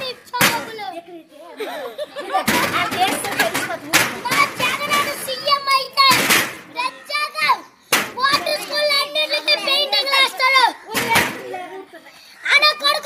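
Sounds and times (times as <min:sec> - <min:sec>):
boy talking excitedly: 0:00.0 - 0:13.0
sharp knocks: 0:02.5 - 0:05.3, 0:06.0 - 0:06.7, 0:07.9 - 0:08.5, 0:10.9 - 0:11.4.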